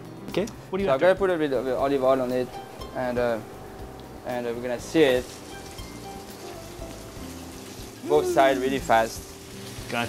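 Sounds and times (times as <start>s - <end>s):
soft background music: 0.0s - 10.0s
fish sizzling on a griddle: 2.8s - 10.0s.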